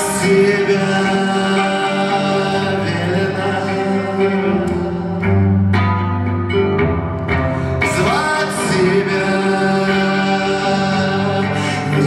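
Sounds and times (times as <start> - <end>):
solo electric guitar: 0.0 - 12.0.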